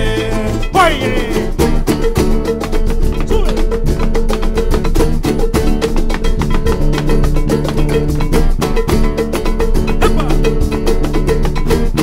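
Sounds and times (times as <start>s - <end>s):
electric bass: 0.0s - 12.0s
quick percussive beat: 0.0s - 12.0s
small guitar: 0.0s - 12.0s
strummed acoustic guitars: 0.0s - 12.0s.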